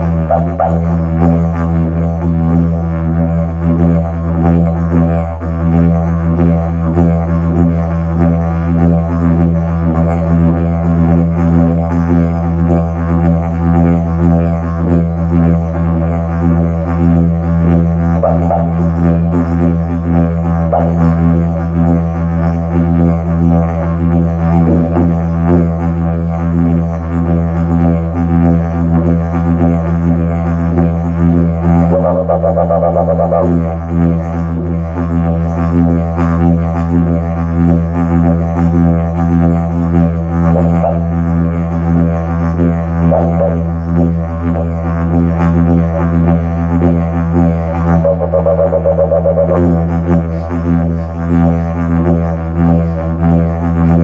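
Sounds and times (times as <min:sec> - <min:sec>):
didgeridoo drone: 0:00.0 - 0:54.0.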